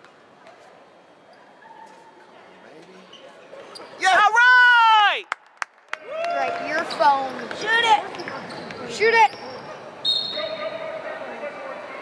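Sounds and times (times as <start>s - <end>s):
high whistle-like tone: 10.0s - 10.6s.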